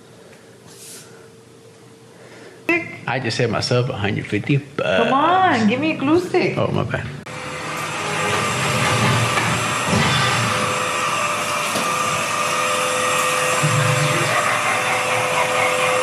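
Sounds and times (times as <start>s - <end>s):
stick vacuum motor whine: 7.3s - 16.0s.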